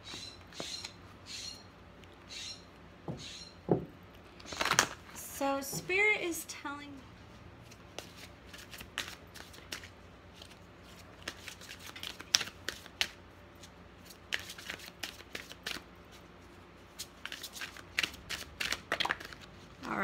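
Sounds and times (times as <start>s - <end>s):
cards being shuffled: 7.6s - 16.3s, 17.0s - 19.6s.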